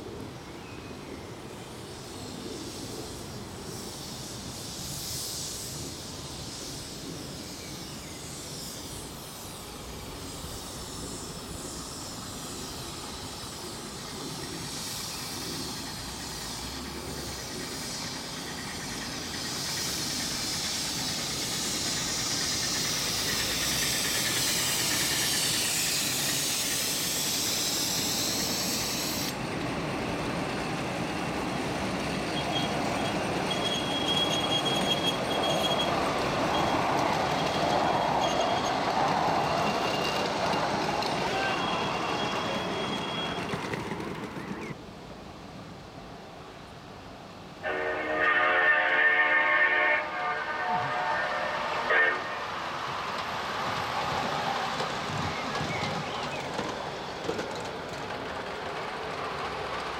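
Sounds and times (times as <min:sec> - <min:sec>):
steam hissing: 0:00.0 - 0:59.9
train coaches rolling over rails: 0:07.8 - 0:45.3, 0:47.4 - 0:59.9
wheels squealing: 0:32.1 - 0:44.8.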